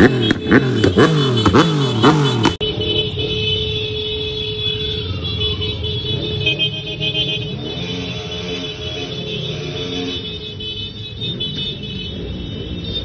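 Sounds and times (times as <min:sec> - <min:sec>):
motorcycle engines: 0:00.0 - 0:13.0.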